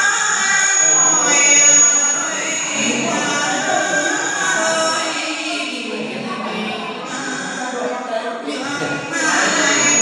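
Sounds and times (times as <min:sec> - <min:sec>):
woman singing through a microphone: 0:00.0 - 0:10.0.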